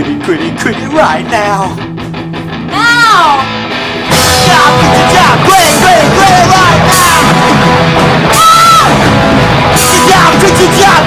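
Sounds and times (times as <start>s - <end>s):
punk rock band playing loud: 0.0s - 11.0s.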